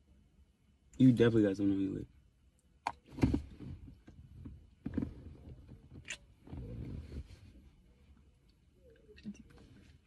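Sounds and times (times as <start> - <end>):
muffled rustle of movement: 3.0 - 8.5, 9.2 - 10.0.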